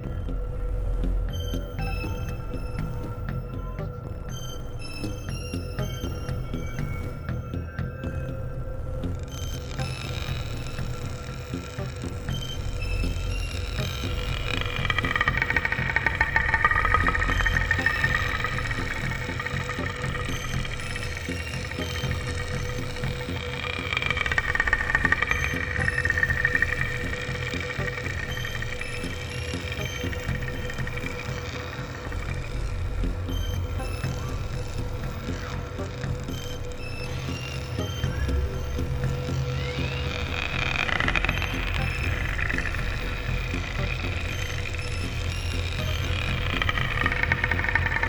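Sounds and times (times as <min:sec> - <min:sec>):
ambient drone music: 0:00.0 - 0:48.0
whirring ticking mechanical texture: 0:00.0 - 0:48.0.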